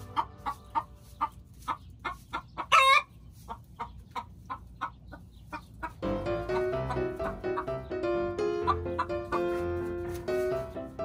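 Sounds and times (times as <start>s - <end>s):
chicken squawk: 0.0s - 7.9s, 8.5s - 10.1s
chickens clucking: 0.0s - 11.0s.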